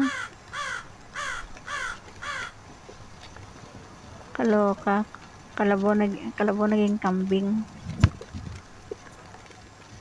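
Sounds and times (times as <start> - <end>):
crow cawing: 0.0 - 2.7.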